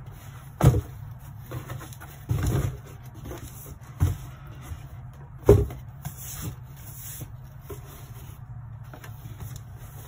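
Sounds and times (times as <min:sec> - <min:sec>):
steady low hum: 0:00.0 - 0:10.0
cardboard rubbing and scraping: 0:05.6 - 0:10.0.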